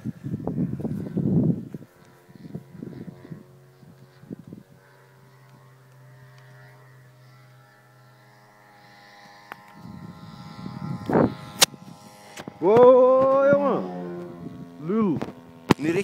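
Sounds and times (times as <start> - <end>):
model airplane engine droning: 0.0 - 16.0.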